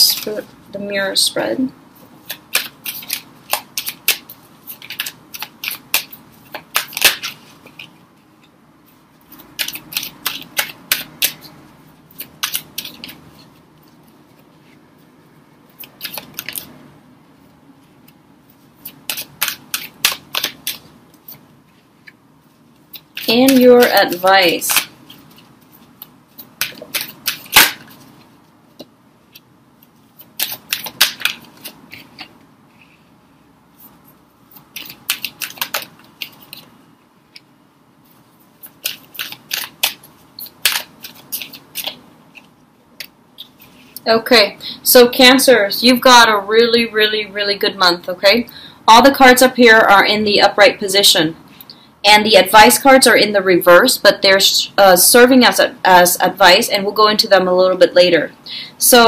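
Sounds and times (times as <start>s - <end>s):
cards snapping and clicking: 2.3s - 7.9s, 9.4s - 11.5s, 12.2s - 13.2s, 15.8s - 16.7s, 18.8s - 21.4s, 24.7s - 25.0s, 26.0s - 28.0s, 30.2s - 32.3s, 34.5s - 36.7s, 38.6s - 43.5s.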